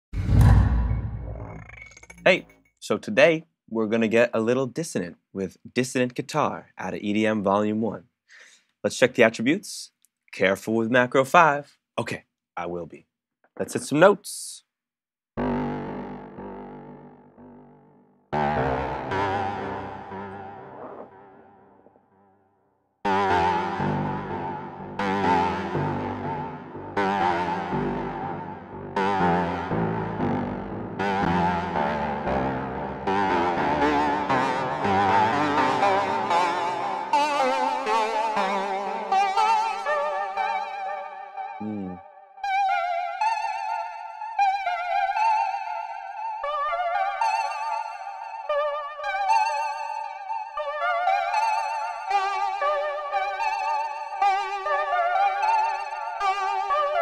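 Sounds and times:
synthesizer keyboard notes: 15.4 - 22.0, 23.1 - 57.0.

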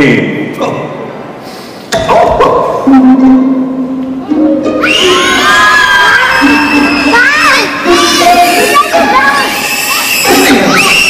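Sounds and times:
children shouting and screaming: 4.7 - 11.0.

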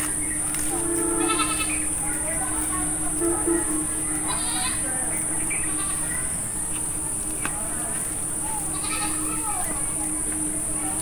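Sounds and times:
high-pitched insect drone: 0.1 - 6.6
goats bleating: 0.9 - 1.8, 8.7 - 9.3.

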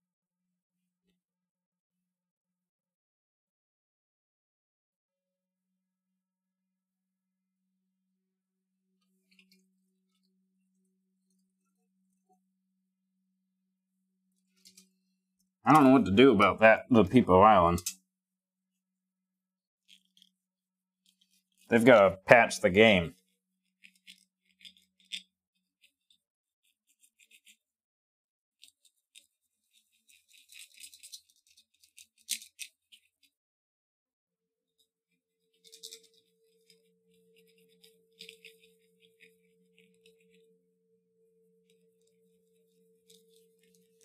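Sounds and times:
fingers handling small object crackling: 23.7 - 27.6, 28.6 - 33.3, 35.5 - 40.6, 41.5 - 44.0
faint steady hum: 35.4 - 44.0.

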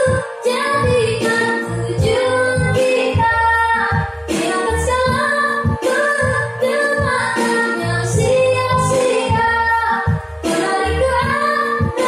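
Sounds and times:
backing track with low chords: 0.0 - 12.0
girl singing pop ballad: 0.0 - 12.0.

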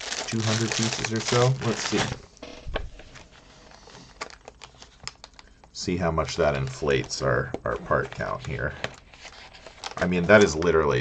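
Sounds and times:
plastic bags rustling: 0.0 - 2.2, 2.9 - 5.6.

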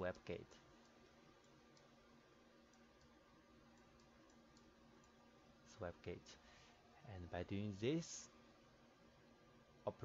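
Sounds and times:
low steady hum: 0.0 - 10.0.

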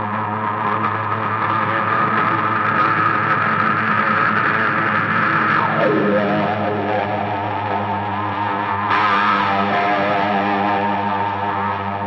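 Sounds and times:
fuzz-distorted electric guitar drone: 0.0 - 12.0.

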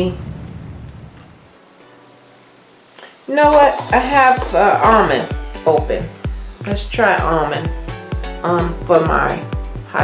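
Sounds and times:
room tone hiss: 0.0 - 10.0.

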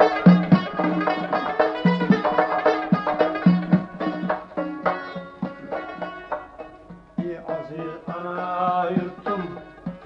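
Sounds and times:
plucked string instruments: 0.0 - 10.0.

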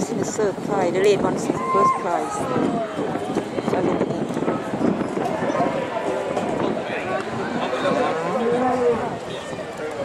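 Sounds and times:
indistinct chatter: 0.0 - 10.0.

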